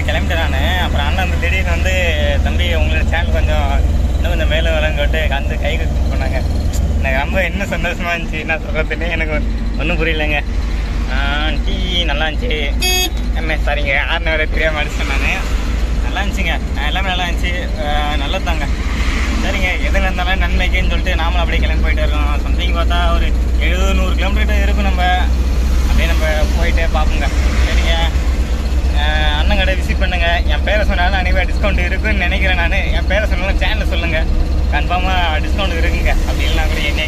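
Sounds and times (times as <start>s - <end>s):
man talking: 0.0s - 10.5s, 11.1s - 18.8s, 19.4s - 37.0s
vehicle cabin drone: 0.0s - 37.0s.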